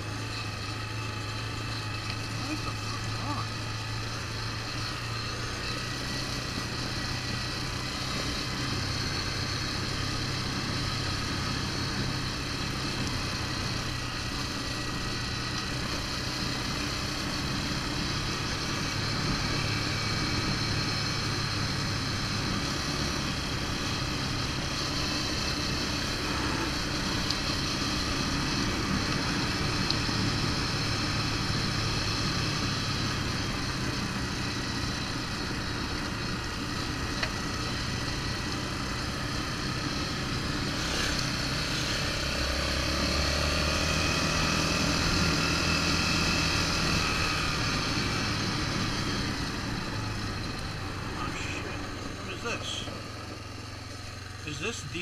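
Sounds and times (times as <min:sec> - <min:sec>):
atv engine running: 0:00.0 - 0:55.0.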